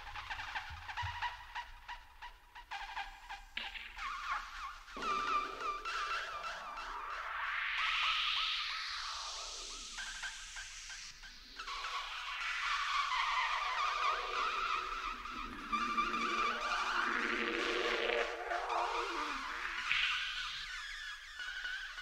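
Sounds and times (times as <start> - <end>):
fluttering screeching electronic texture: 12.1 - 21.2
falling pitch sweep: 12.7 - 20.8.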